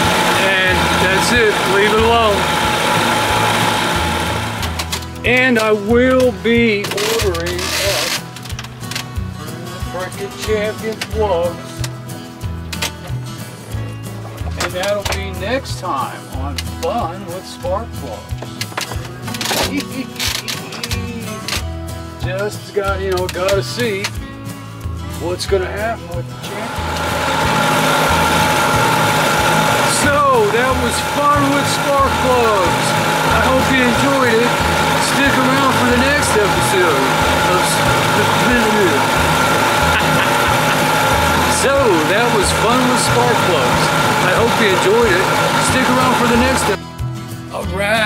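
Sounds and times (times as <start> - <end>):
outboard motor running at speed: 0.0 - 21.9, 26.1 - 47.0.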